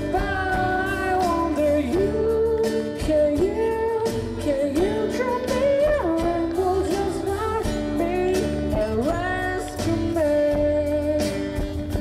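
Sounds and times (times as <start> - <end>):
man singing into a microphone: 0.0 - 11.8
acoustic guitar strumming: 0.0 - 12.0.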